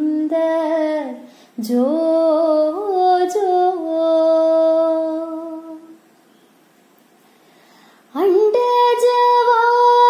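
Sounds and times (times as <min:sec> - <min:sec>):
woman singing a lullaby: 0:00.0 - 0:06.0, 0:08.1 - 0:10.0.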